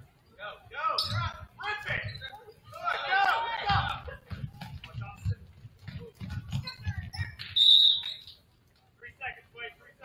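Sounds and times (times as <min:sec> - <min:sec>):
referee's whistle blast: 0:07.6 - 0:08.2.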